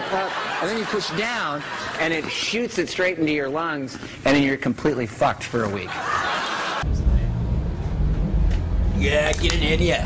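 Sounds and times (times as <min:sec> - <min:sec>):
low steady rumble: 0:06.8 - 0:10.0.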